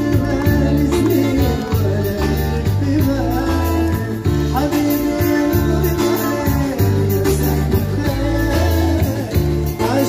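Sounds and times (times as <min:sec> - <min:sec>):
live band music: 0:00.0 - 0:10.0
person singing: 0:00.0 - 0:10.0.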